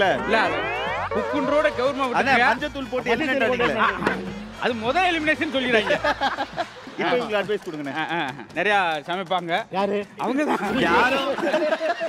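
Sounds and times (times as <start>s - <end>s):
comic boing sound effect: 0.0s - 2.0s.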